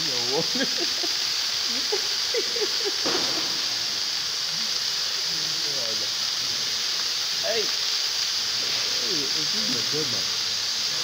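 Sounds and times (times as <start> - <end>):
fire extinguisher gas hissing: 0.0 - 11.0.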